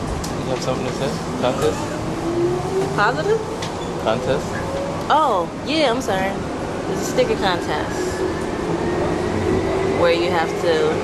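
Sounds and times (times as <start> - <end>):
train running noise: 0.0 - 11.0.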